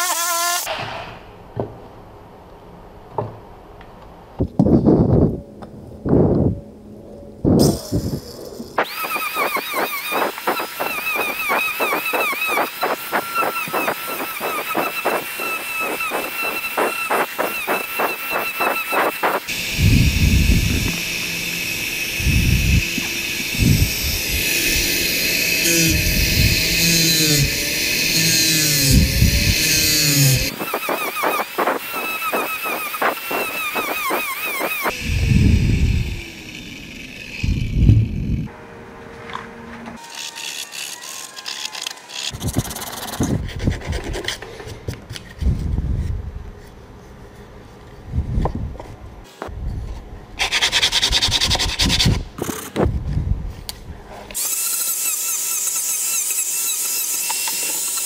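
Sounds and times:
angle grinder whining: 0.0 - 0.7, 7.6 - 38.6, 39.3 - 43.2, 54.3 - 58.0
disc rasping on wood: 8.8 - 19.7, 24.4 - 34.9.

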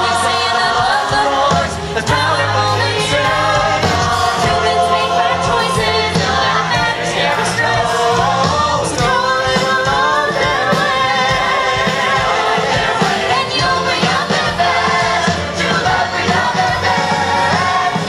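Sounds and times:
choir singing upbeat song: 0.0 - 18.0
live band accompaniment: 0.0 - 18.0.

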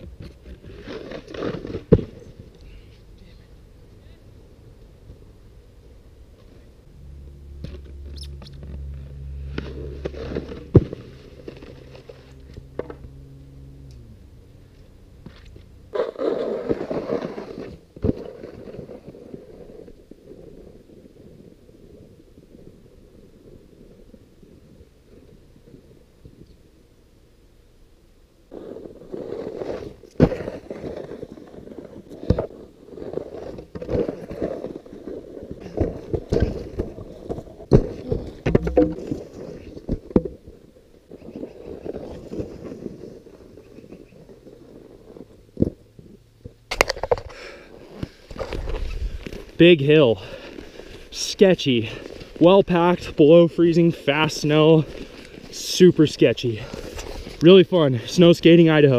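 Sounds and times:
snowskate scraping on snow: 0.3 - 2.4, 15.3 - 21.8, 28.5 - 38.4, 41.1 - 45.4, 47.3 - 58.3
sharp knocks and crunches: 35.5 - 40.4.

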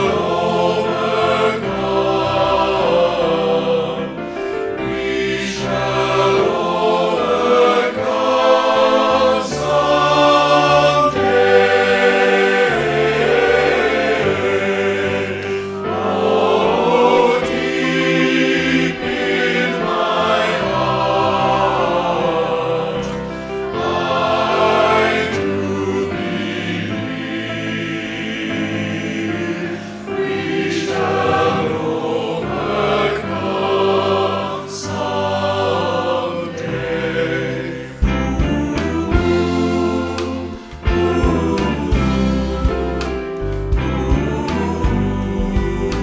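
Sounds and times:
mixed choir singing in harmony: 0.0 - 46.0.

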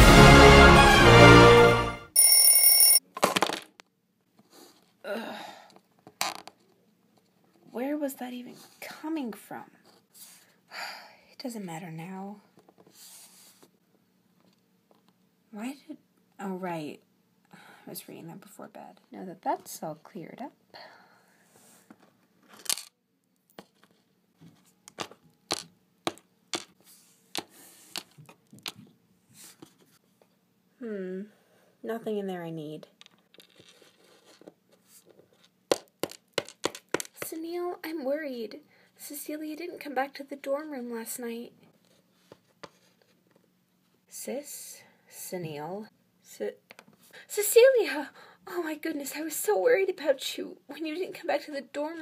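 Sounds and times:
intro theme music: 0.0 - 2.1
high electronic ringing: 2.1 - 3.0.

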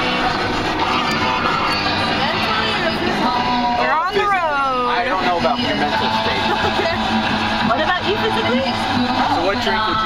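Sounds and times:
background music: 0.0 - 10.0
car road noise drone: 0.0 - 10.0
indistinct chatter: 0.0 - 10.0.

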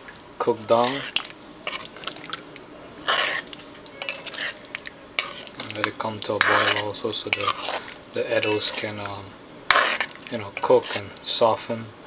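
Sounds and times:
metal spoon scraping pot: 0.7 - 11.2.

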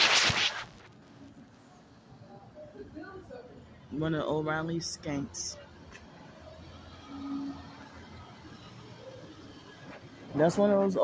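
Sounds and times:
low street rumble: 0.0 - 11.0.

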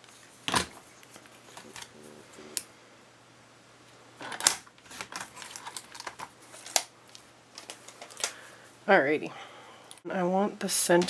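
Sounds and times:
paper rustling: 4.8 - 8.4.

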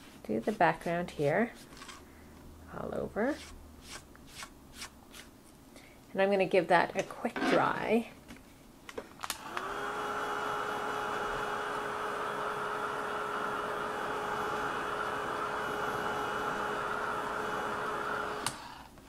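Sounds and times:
heat tool blowing with whirring hum: 9.2 - 19.0.

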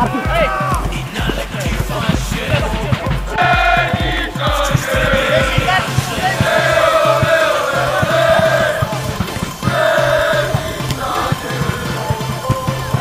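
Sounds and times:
crowd chanting in unison: 0.0 - 13.0
steady beat: 0.0 - 13.0.

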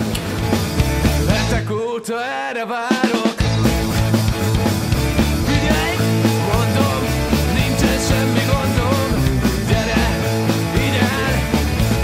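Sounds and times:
rock music: 0.0 - 2.0, 2.9 - 12.0.

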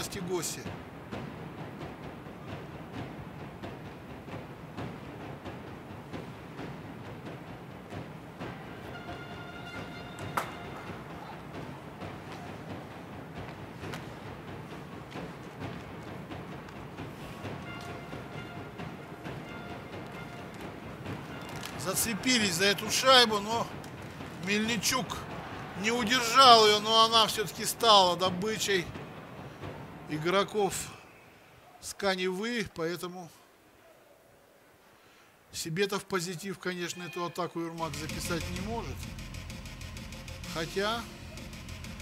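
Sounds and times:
crowd and rink noise: 7.2 - 33.0, 35.6 - 39.0, 40.5 - 42.0.

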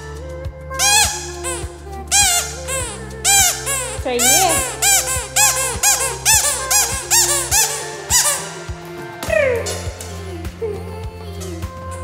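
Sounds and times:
squeaky dog toy squeaking: 0.8 - 10.0.

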